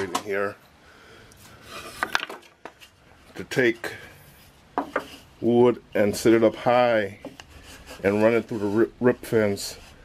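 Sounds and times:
wooden board rubbing slide: 0:01.6 - 0:02.2, 0:06.2 - 0:10.0.

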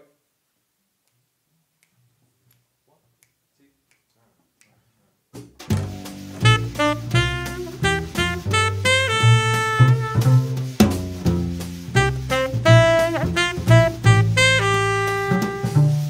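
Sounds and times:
jazz swing band playing: 0:05.6 - 0:16.0.

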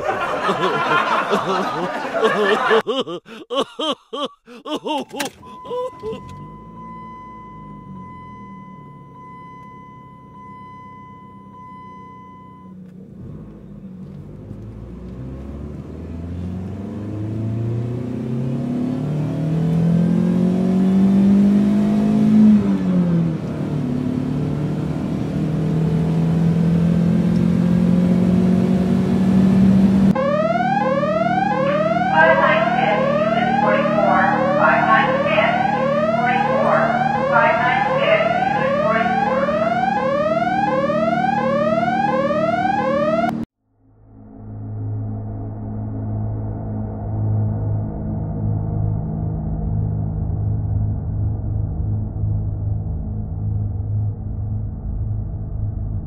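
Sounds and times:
electronic drone rising in pitch: 0:30.1 - 0:43.4.

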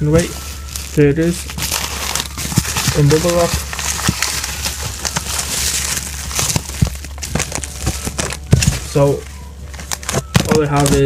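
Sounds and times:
bubble wrap crinkling: 0:00.0 - 0:11.0
low steady hum: 0:00.0 - 0:11.0.

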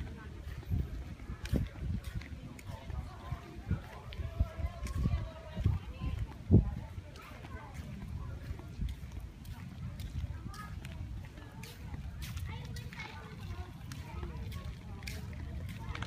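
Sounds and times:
faint indistinct voices: 0:00.0 - 0:16.0
wind rumble on microphone: 0:00.0 - 0:16.0.

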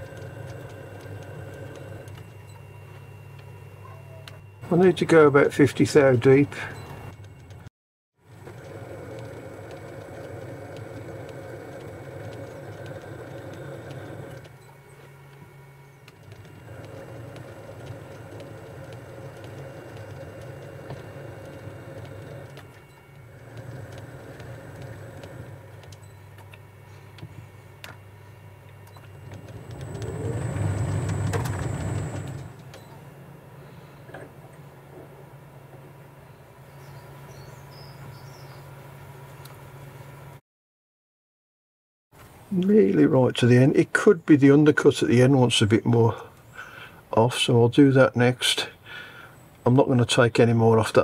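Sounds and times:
metal lathe humming: 0:00.0 - 0:02.2, 0:08.4 - 0:15.1, 0:16.2 - 0:25.9, 0:29.1 - 0:32.7
gear whine: 0:00.0 - 0:35.1.

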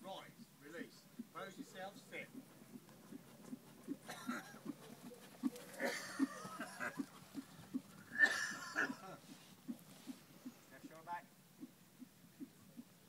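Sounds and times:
horse trotting: 0:00.4 - 0:13.0
horse snorting: 0:01.1 - 0:11.0.

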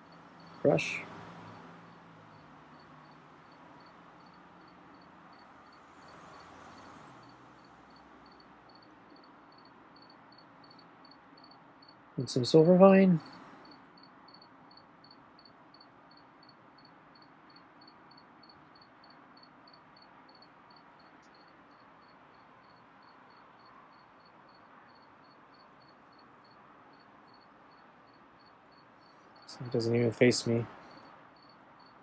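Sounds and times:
cricket chirping: 0:00.0 - 0:32.0
faint background hiss: 0:00.0 - 0:32.0.

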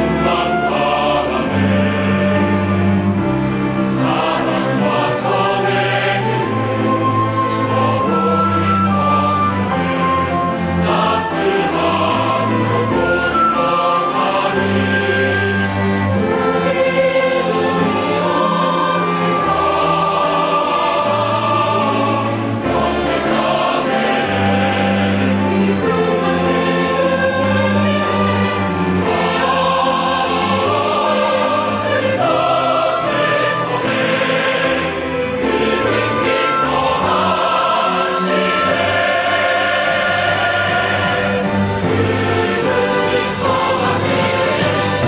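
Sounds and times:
mixed choir singing a hymn: 0:00.0 - 0:45.0
orchestra playing: 0:00.0 - 0:45.0.

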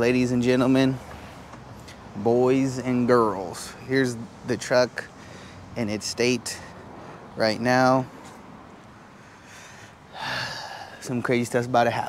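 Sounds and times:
man exhaling: 0:09.3 - 0:11.1.

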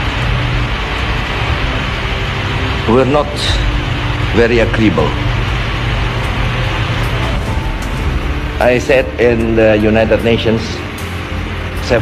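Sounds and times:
film soundtrack hiss and rumble: 0:00.0 - 0:12.0.

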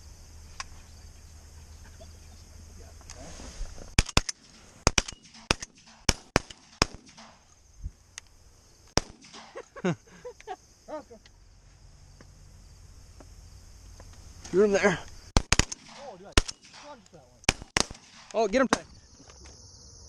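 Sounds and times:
shotgun blasts: 0:04.0 - 0:07.5, 0:09.0 - 0:09.6, 0:15.4 - 0:18.9.

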